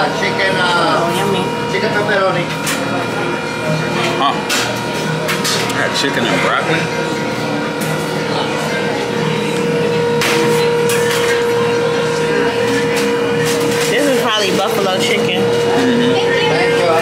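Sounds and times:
steady mechanical hum: 0.0 - 17.0.

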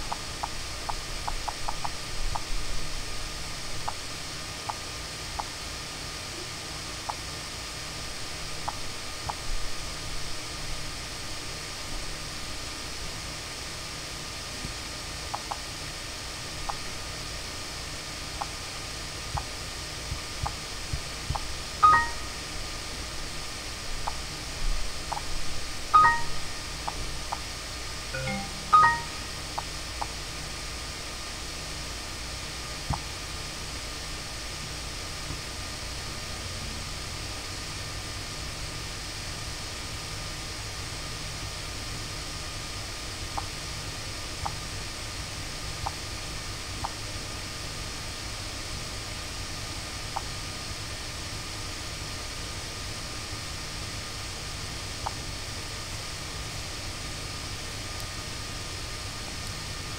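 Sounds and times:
short electronic chimes: 21.8 - 22.3, 26.0 - 26.5, 28.2 - 29.3.

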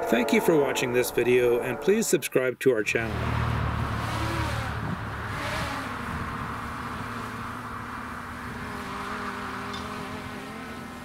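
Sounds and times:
small aircraft droning overhead: 3.2 - 11.0.

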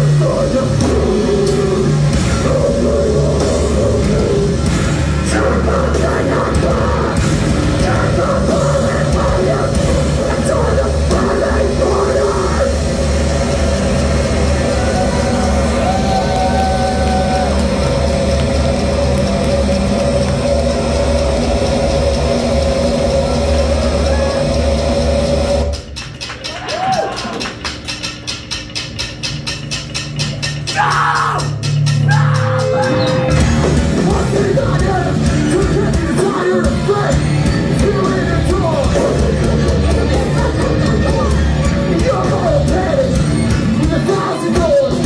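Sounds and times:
heavy rock band playing: 0.0 - 45.0.

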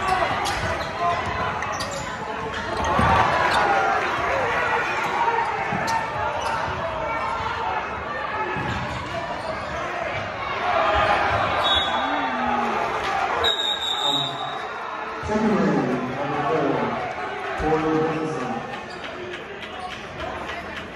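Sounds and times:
crowd chatter: 0.0 - 20.9
referee whistle: 11.6 - 12.2, 13.4 - 14.7.

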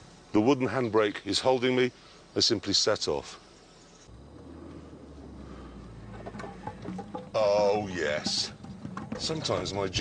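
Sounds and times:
car engine hum: 4.2 - 7.8.

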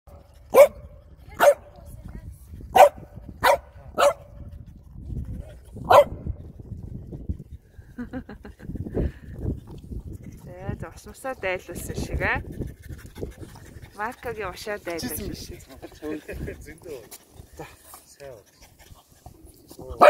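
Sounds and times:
dog barking: 0.5 - 0.8, 1.4 - 1.6, 2.7 - 4.3, 5.9 - 6.3.

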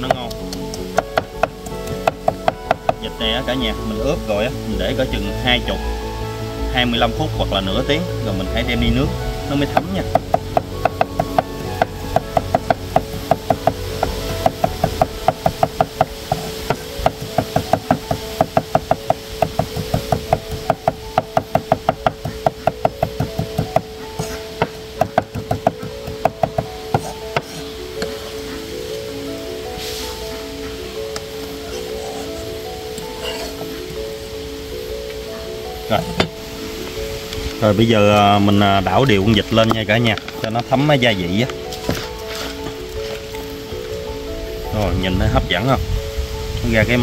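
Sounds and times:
cleaver chopping on wooden board: 0.0 - 3.0, 9.7 - 28.2
background music: 0.0 - 47.0.

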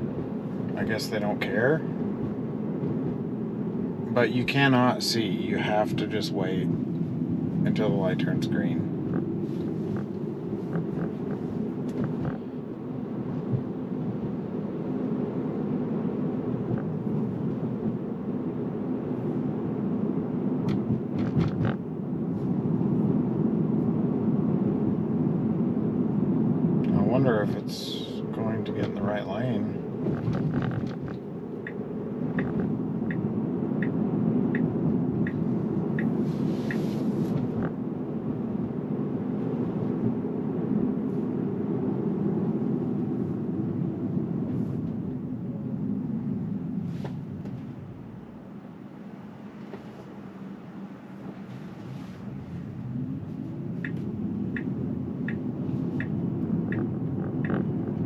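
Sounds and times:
road and tyre noise in car: 0.0 - 58.0
turn signal ticking: 9.0 - 12.5, 30.0 - 37.8, 53.6 - 58.0.

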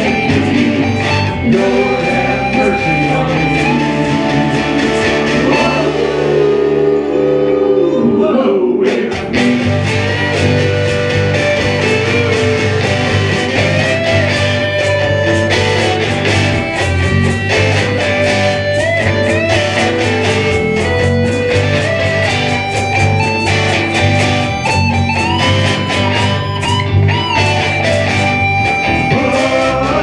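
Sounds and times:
electric guitar bending notes: 0.0 - 30.0
live band playing: 0.0 - 30.0.

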